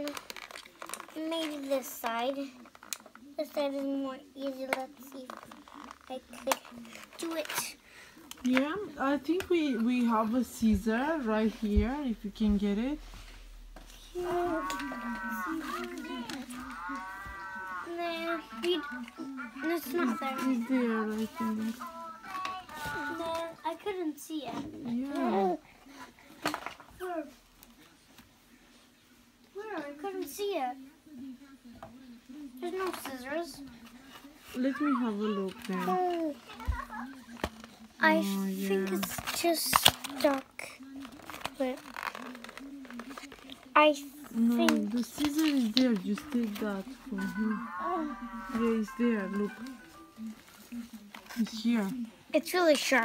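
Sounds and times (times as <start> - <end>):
low steady voice: 13.9 - 23.5, 42.2 - 51.3
child speaking: 14.1 - 25.6.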